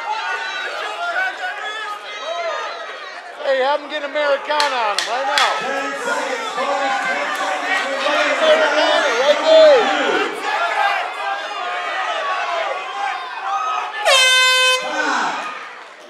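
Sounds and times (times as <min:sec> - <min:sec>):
crowd and corners shouting: 0:00.0 - 0:16.0
air horn blast: 0:14.0 - 0:15.4.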